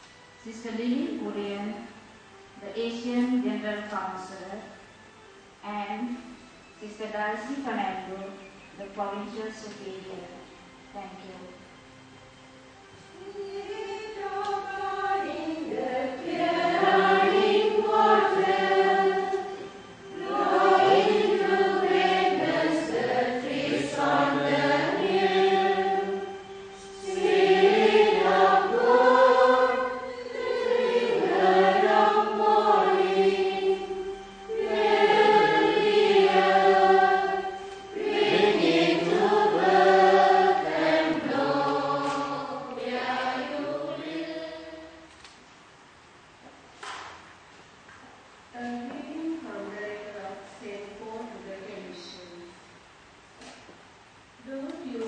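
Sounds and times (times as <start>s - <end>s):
choir singing: 13.2s - 45.1s.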